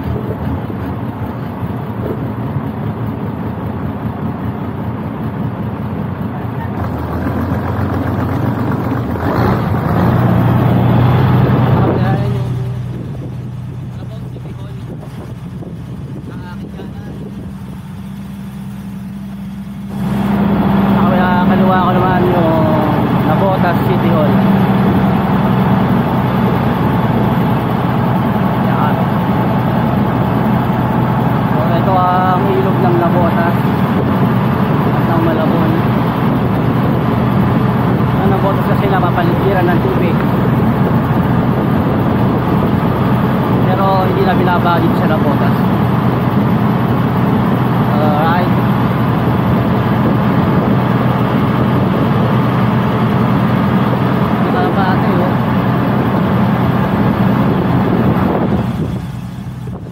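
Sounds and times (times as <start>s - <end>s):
boat engine running: 0.0s - 59.9s.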